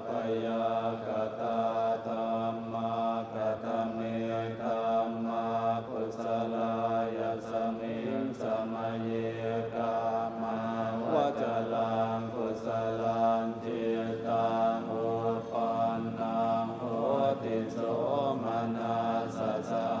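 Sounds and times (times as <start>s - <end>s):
monks chanting together: 0.0s - 20.0s.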